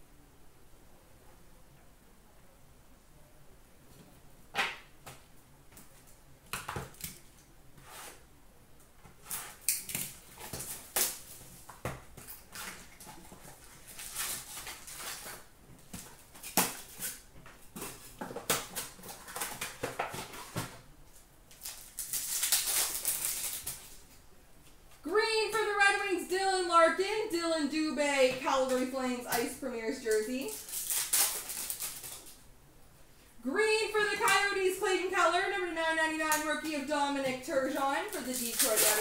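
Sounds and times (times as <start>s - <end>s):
cardboard and wrapper rustling: 9.2s - 20.8s, 21.6s - 24.1s, 30.4s - 32.4s, 37.7s - 39.0s
wrapper tearing: 12.3s - 17.2s, 21.5s - 24.2s, 30.4s - 32.4s, 38.0s - 39.0s.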